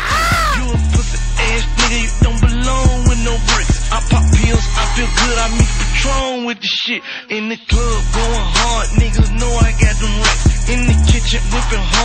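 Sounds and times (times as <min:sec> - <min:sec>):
high drawn-out shout: 0:00.0 - 0:00.7
hip hop beat with heavy bass: 0:00.0 - 0:06.2, 0:07.7 - 0:12.0.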